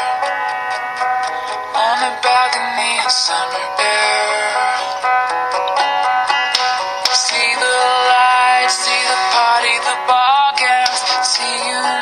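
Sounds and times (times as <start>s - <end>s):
instrumental backing music: 0.0s - 12.0s
person singing: 1.2s - 5.1s, 6.5s - 12.0s.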